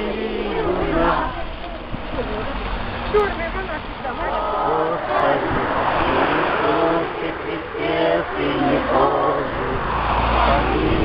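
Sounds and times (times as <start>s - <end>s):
car driving past: 0.0s - 11.0s
crowd voices: 0.0s - 11.0s.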